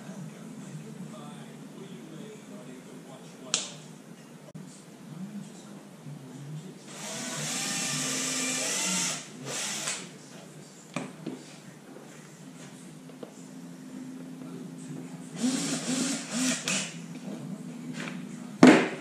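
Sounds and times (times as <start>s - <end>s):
cordless drill driving into wood: 15.4s - 16.9s.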